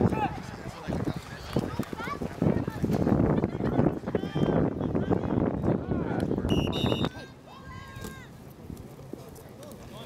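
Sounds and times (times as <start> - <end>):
crowd noise: 0.0 - 10.0
referee's whistle: 6.5 - 7.2.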